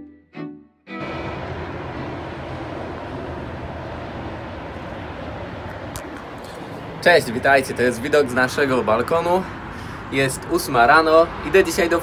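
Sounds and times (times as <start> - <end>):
urban background hiss and rumble: 0.9 - 12.0.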